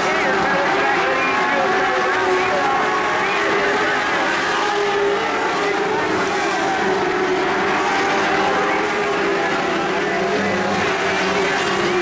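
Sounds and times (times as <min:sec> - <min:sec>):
race car engines: 0:00.0 - 0:12.0.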